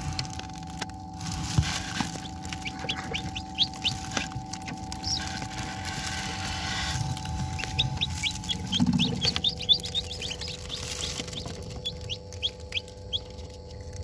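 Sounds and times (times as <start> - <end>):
chicks peeping: 0.0 - 14.0
steady hum: 0.0 - 14.0.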